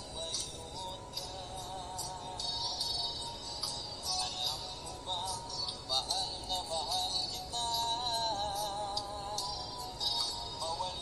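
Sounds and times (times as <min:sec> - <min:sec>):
backing music with high shimmer: 0:00.0 - 0:11.0
person singing love song: 0:00.0 - 0:11.0.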